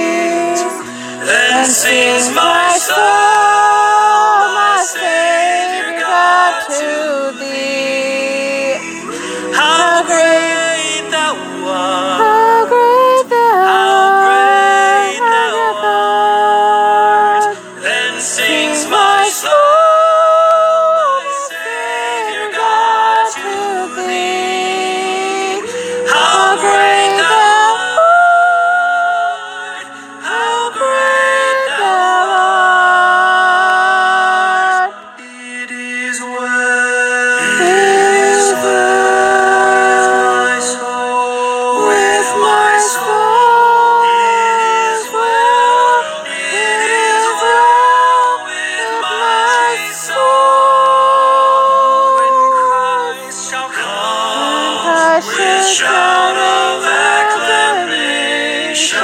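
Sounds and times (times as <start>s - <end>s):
a cappella voices singing a hymn: 0.0s - 59.0s.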